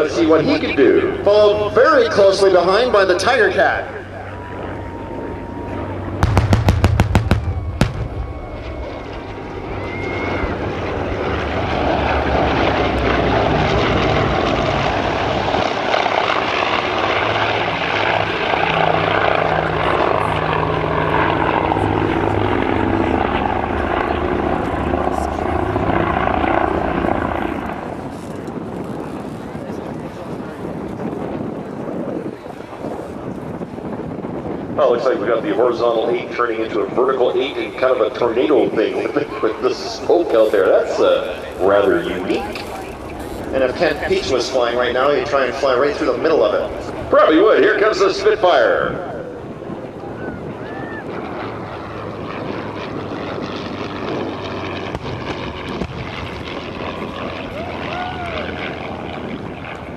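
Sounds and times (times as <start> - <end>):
propeller aircraft flying past: 0.0 - 59.9
pyrotechnic blasts: 5.4 - 20.4, 47.9 - 58.3.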